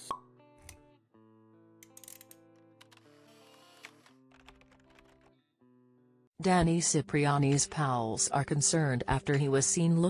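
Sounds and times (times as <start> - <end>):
soft background music: 0.0 - 5.3, 6.4 - 10.0.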